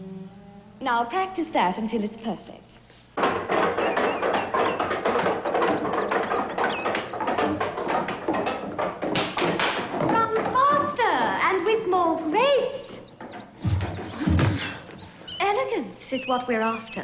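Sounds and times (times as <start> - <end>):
music: 0.0 - 0.8
footsteps on wooden stairs: 3.0 - 17.0.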